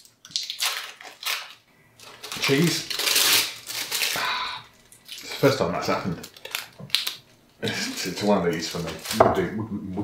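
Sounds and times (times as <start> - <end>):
plastic wrapper crinkling: 0.0 - 9.5.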